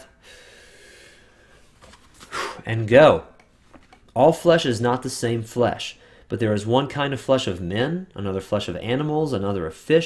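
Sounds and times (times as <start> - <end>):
man inhaling deeply: 0.0 - 1.6.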